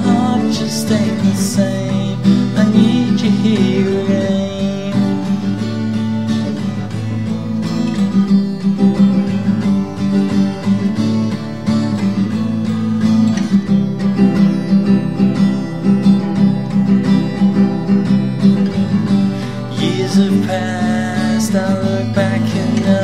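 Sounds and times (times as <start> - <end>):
acoustic guitar strumming: 0.0 - 23.0.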